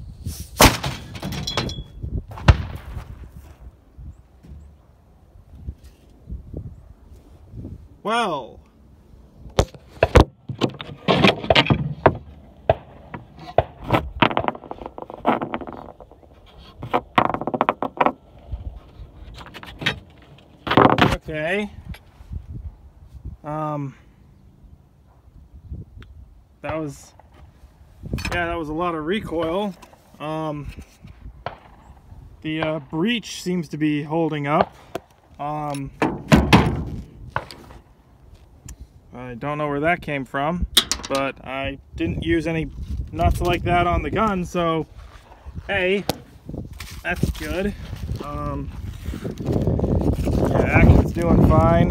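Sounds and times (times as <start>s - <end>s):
handling knocks and thumps: 4.4s - 4.8s, 9.5s - 21.3s, 34.6s - 37.9s.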